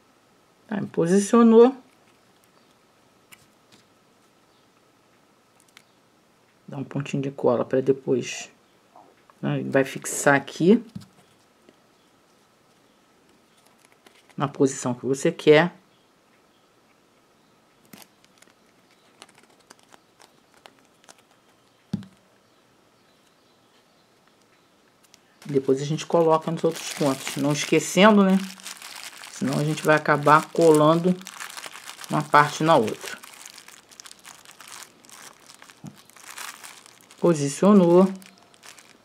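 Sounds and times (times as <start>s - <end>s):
plastic wrapper crinkling: 13.5s - 14.4s, 17.8s - 22.2s, 25.0s - 39.0s
handling clicks and rustles: 17.9s - 22.3s.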